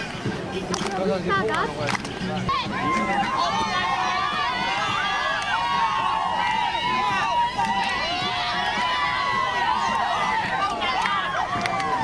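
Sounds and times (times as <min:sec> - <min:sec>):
group of high voices shouting: 0:02.5 - 0:12.0.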